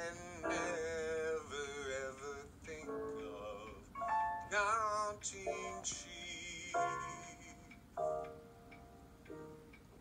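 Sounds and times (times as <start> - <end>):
piano playing slow chords: 0.0 - 10.0.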